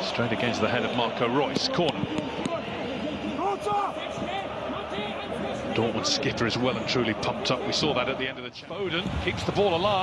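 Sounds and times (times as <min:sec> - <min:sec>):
men calling and shouting: 0:00.0 - 0:10.0.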